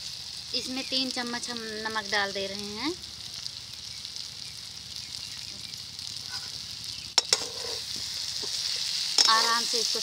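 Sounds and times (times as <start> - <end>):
vegetables sizzling in a pan: 0.0 - 10.0
metal spatula clicking on pan: 9.2 - 9.4.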